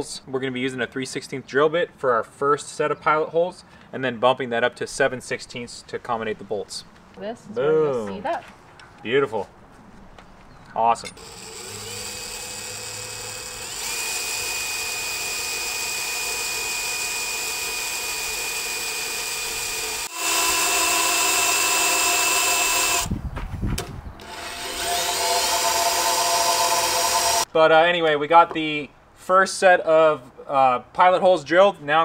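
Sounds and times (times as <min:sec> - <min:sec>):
cordless drill whining through metal: 0:11.2 - 0:23.1, 0:24.2 - 0:27.5.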